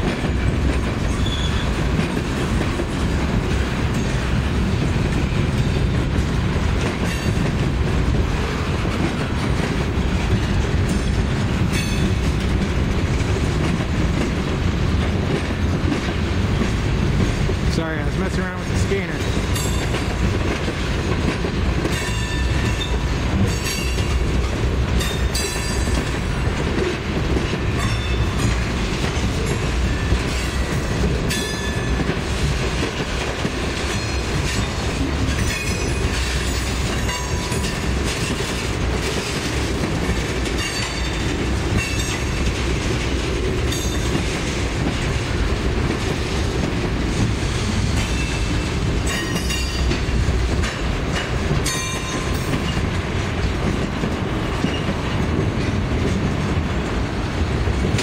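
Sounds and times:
steel wheels rumbling on rail: 0.0s - 58.0s
wheels clacking over rail joints: 0.0s - 58.0s.

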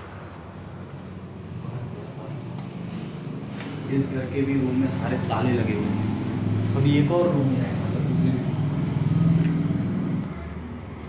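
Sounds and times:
engine running: 0.0s - 11.0s.

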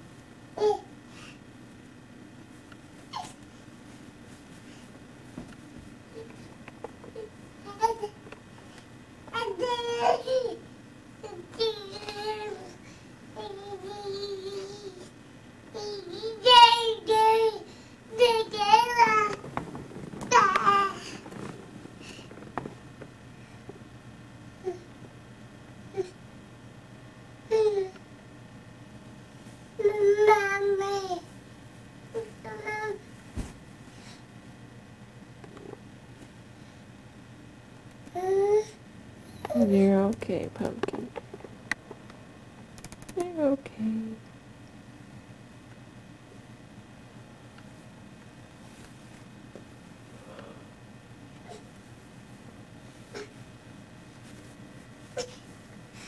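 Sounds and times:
low background hum: 0.0s - 56.0s.

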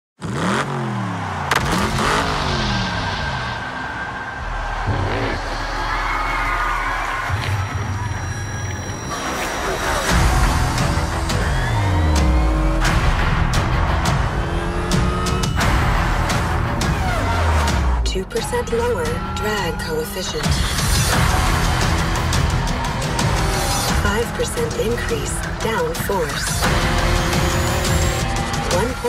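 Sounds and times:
dramatic trailer music: 1.5s - 29.0s.

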